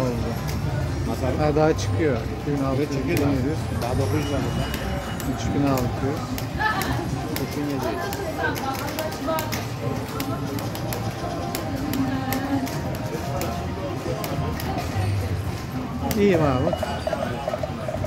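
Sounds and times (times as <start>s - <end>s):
casino chatter: 0.0s - 18.0s
slot machine electronic music: 16.2s - 18.0s.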